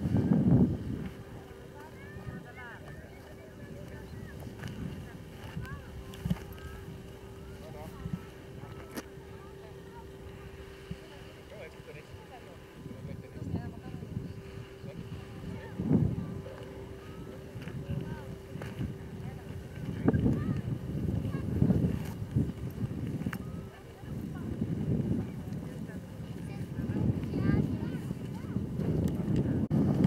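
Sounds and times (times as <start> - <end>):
faint distant voices: 0.0 - 30.0
faint steady hum: 0.0 - 30.0
wind buffeting microphone: 0.0 - 30.0.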